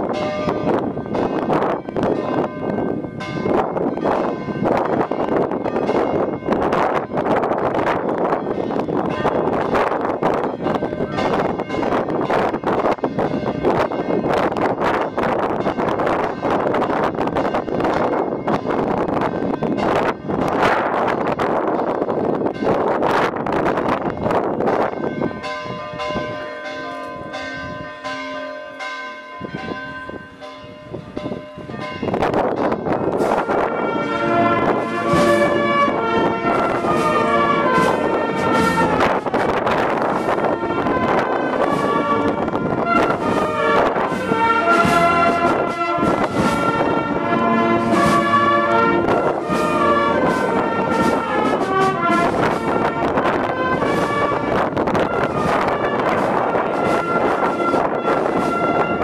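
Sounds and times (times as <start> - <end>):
church bells ringing rapidly: 0.0 - 59.0.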